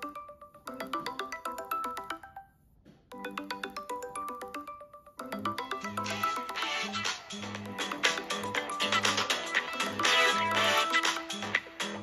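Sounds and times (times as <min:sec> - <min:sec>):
smartphone ringtone marimba melody: 0:00.0 - 0:12.0.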